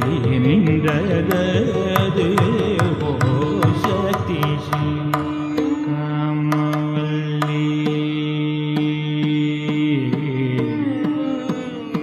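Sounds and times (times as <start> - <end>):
man singing long note: 0.1 - 12.0.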